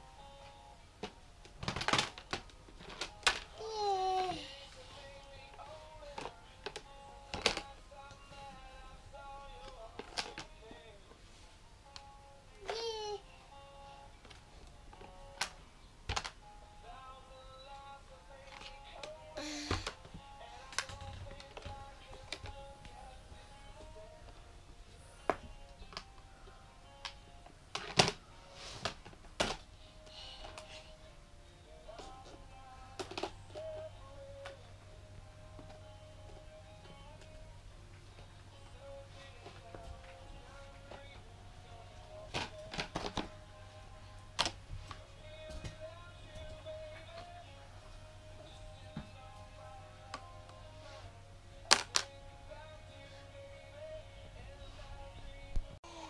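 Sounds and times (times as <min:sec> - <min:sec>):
soft melodic music: 0:02.2 - 0:28.8
plastic clothespins clattering: 0:33.0 - 0:34.6.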